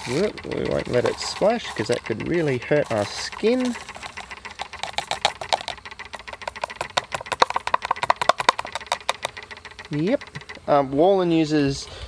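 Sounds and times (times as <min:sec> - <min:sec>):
solution crackling and popping: 0:00.0 - 0:10.6.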